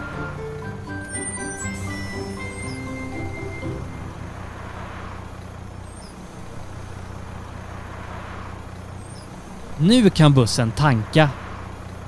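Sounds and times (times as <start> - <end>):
cartoon bus engine hum: 0.0 - 12.0
road noise: 0.0 - 12.0.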